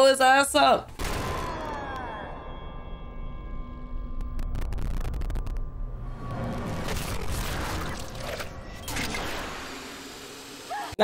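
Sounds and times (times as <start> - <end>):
explosion rumble: 4.0 - 8.0.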